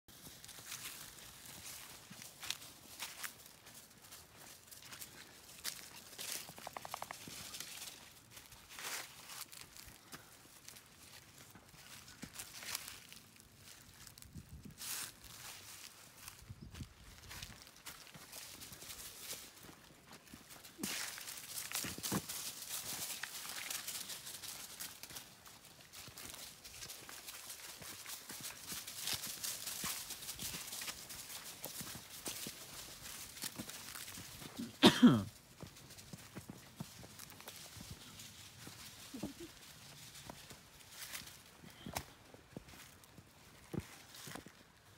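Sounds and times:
footsteps crunching dry leaves: 0.1s - 44.9s.

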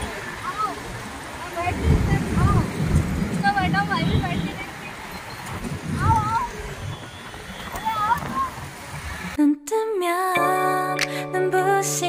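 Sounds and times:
woman singing: 9.4s - 12.0s.

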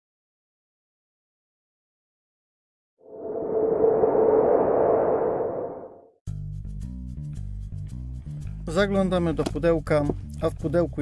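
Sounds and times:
synthetic rushing whoosh: 3.0s - 6.1s.

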